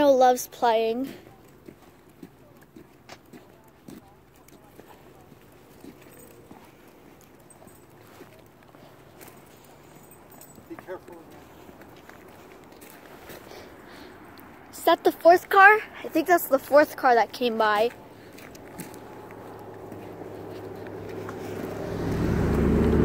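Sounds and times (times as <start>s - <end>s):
footsteps on asphalt: 0.0s - 23.0s.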